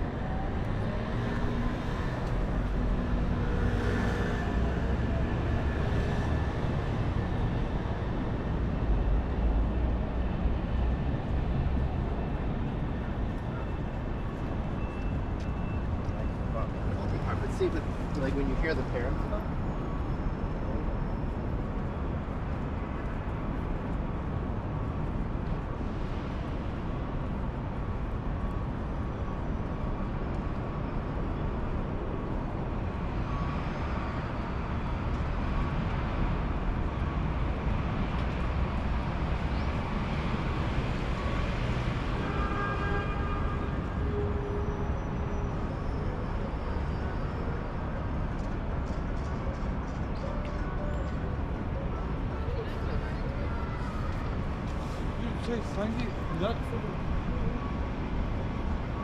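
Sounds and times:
faint voices of passersby: 0.0s - 26.6s, 43.2s - 59.0s
low traffic rumble: 0.0s - 59.0s.

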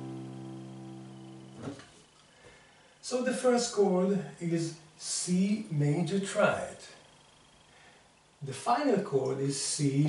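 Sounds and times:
piano chord ringing: 0.0s - 1.6s.

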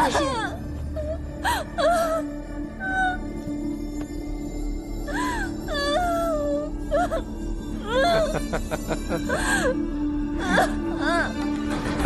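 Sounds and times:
dramatic music low drone: 0.0s - 12.0s.

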